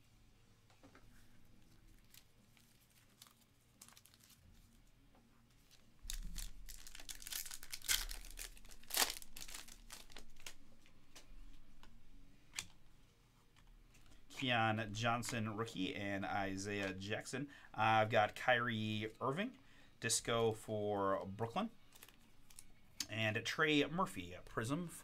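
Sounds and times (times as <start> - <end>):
plastic wrapper tearing and crinkling: 2.0 - 4.8, 5.6 - 10.6, 21.8 - 22.7.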